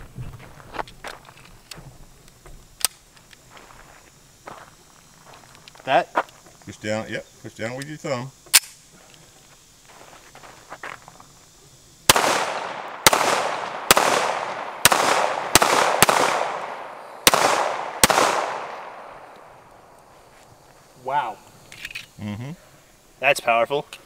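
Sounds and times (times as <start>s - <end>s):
pistol shots echoing: 12.1s - 19.4s.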